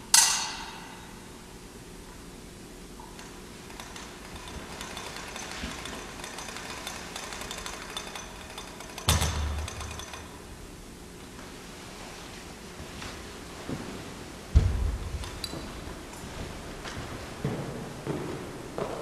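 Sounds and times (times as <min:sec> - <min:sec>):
heavy thump and low rumble: 0:14.5 - 0:15.4.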